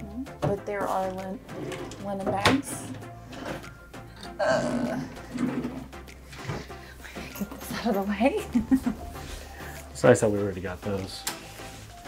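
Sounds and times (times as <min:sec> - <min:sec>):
woman humming: 0:04.2 - 0:05.4.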